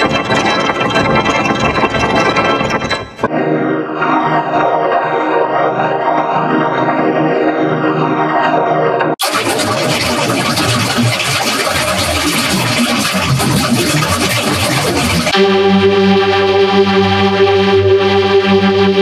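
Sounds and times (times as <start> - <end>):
synth chord with flanging sweep: 15.3 - 19.0.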